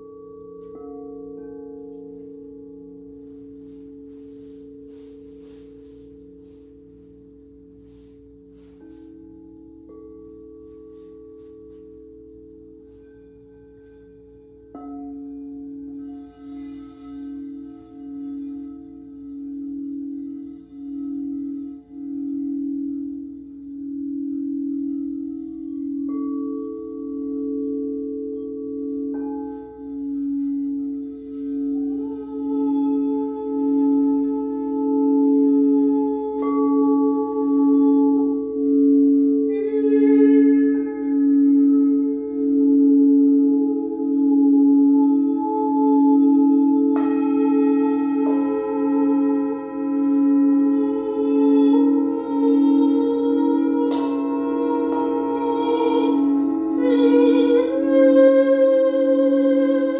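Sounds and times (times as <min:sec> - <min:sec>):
crystal singing bowls ringing: 0:00.0 - 0:59.9
higher singing bowl tone: 0:00.0 - 0:59.9.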